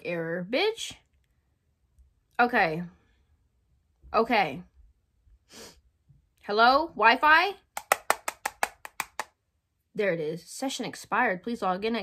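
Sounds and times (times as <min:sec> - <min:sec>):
fingernail tapping phone screen: 0:07.8 - 0:09.3.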